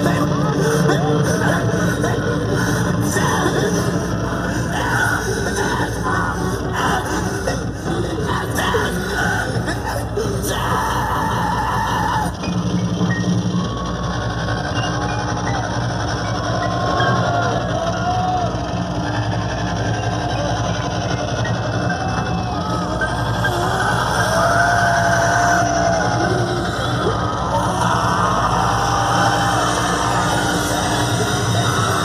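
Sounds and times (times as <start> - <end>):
crowd voices: 0.0 - 32.0
loud heavy rock music: 0.0 - 32.0.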